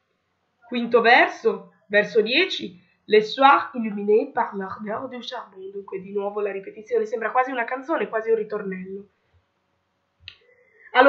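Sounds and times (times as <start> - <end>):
person speaking: 0.7 - 9.0.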